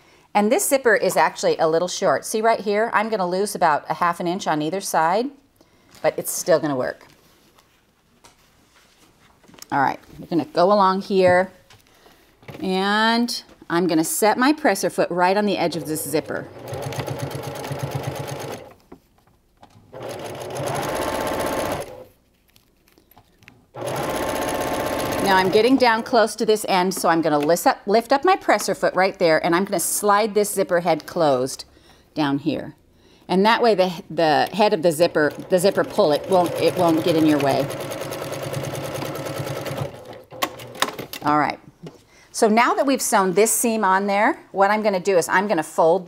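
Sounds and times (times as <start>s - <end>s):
sewing machine stitching: 15.6s - 18.8s, 19.9s - 22.1s, 23.8s - 26.1s, 34.4s - 41.2s.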